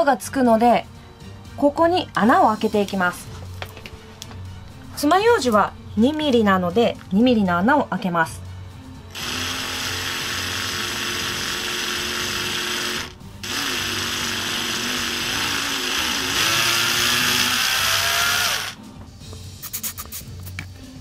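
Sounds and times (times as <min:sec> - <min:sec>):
cordless drill whining: 0:09.1 - 0:18.8.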